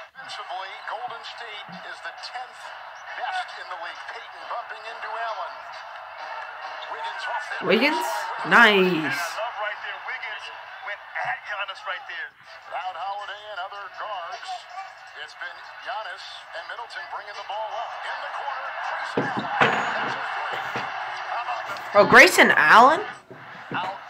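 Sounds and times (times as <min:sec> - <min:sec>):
arena crowd noise: 0:00.0 - 0:24.0
commentator speaking: 0:07.6 - 0:09.4, 0:21.6 - 0:24.0.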